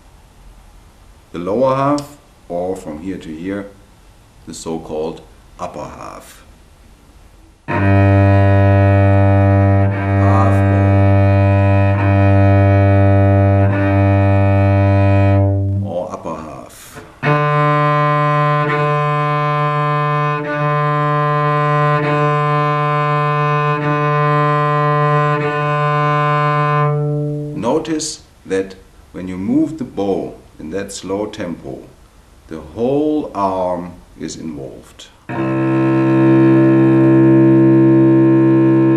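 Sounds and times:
cello open strings bowed: 0:07.7 - 0:28.1, 0:35.3 - 0:38.9.

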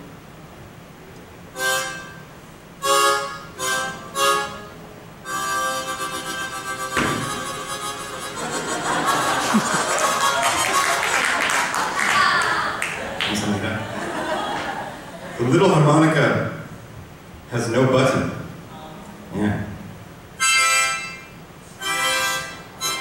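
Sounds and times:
solo harmonica: 0:01.5 - 0:08.8, 0:20.4 - 0:23.0.

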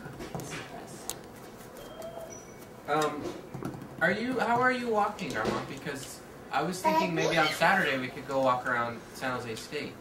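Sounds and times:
toddler cooing: 0:06.8 - 0:08.0.

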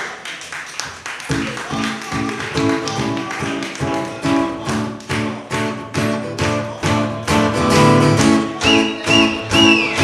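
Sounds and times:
acoustic guitar strumming: 0:01.3 - 0:10.0.

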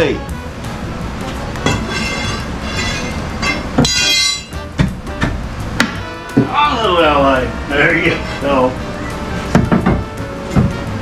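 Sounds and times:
high-pitched squeal: 0:01.6 - 0:04.6
hand tool knocking on wood: 0:09.5 - 0:10.9.

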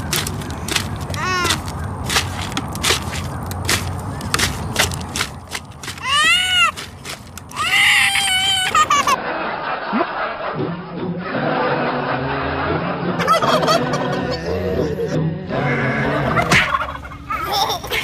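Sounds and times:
toddler crying out: 0:06.0 - 0:06.8, 0:07.5 - 0:09.0.

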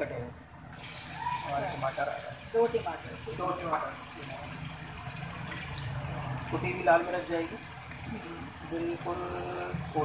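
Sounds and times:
food sizzling in oil: 0:00.7 - 0:10.0.

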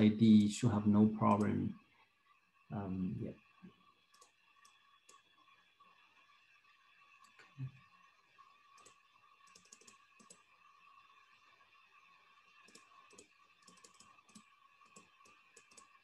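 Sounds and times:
computer clicking: 0:00.0 - 0:01.7, 0:04.1 - 0:05.3, 0:08.7 - 0:10.5, 0:12.6 - 0:16.0
faint steady hum: 0:00.0 - 0:16.0.

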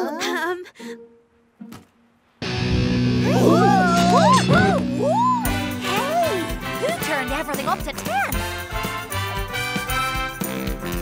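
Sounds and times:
distorted electric guitar chord: 0:02.4 - 0:07.5.

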